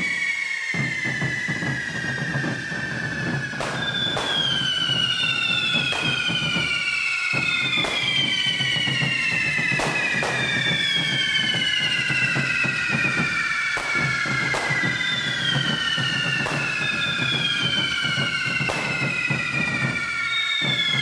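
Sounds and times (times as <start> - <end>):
fireworks spraying sparks: 0.0 - 21.0
fireworks whistling: 0.0 - 21.0
sharp cracks: 3.6 - 8.8, 13.7 - 15.6.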